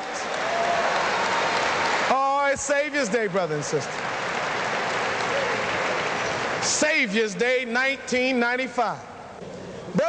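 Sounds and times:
audience applauding: 0:00.0 - 0:06.8.

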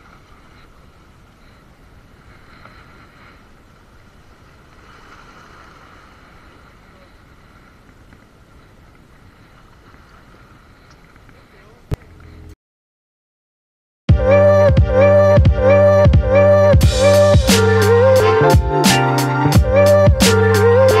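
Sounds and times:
small waves breaking on rocks: 0:00.0 - 0:11.8.

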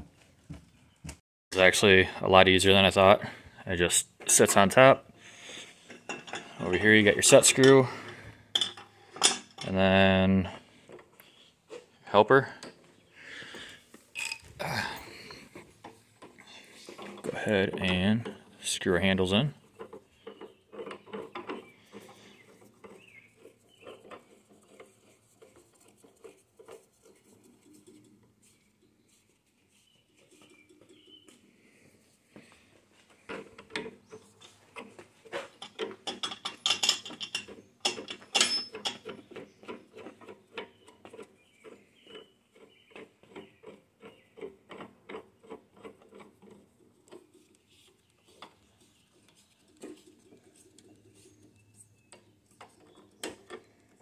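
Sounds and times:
small clicks and rubbing of threads: 0:19.7 - 0:31.4, 0:38.8 - 0:54.0.

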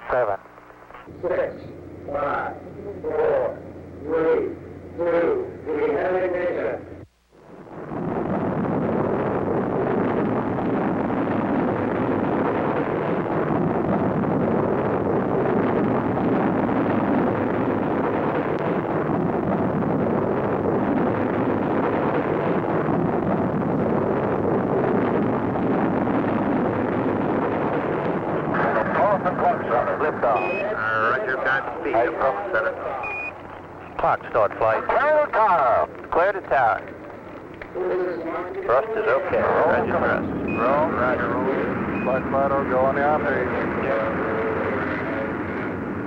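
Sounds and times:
rocket engines roaring: 0:01.0 - 0:46.0.

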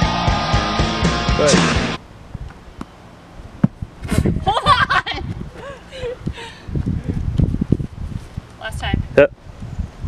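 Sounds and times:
ball bouncing on grass: 0:03.6 - 0:03.8.

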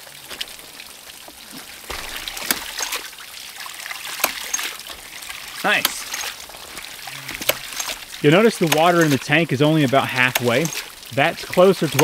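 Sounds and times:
water rushing and spurting: 0:00.0 - 0:12.0.

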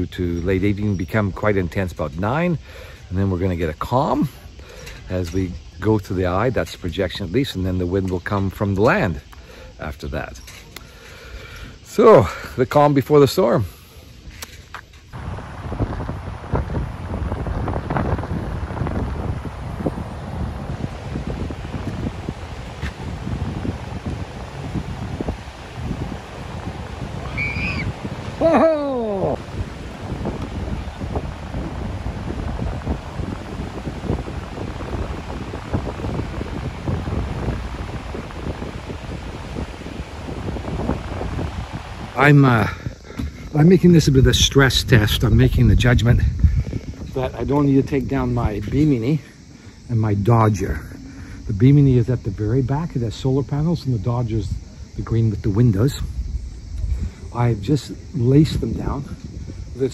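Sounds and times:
gusty wind buffeting microphone: 0:00.0 - 0:59.9
surf washing onto beach: 0:15.2 - 0:49.2
short falling cry: 0:27.2 - 0:29.6.

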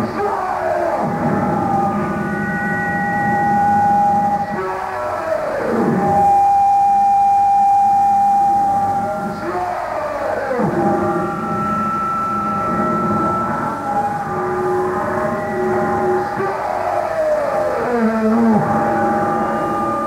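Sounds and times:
electronic drone tones: 0:00.0 - 0:20.0.

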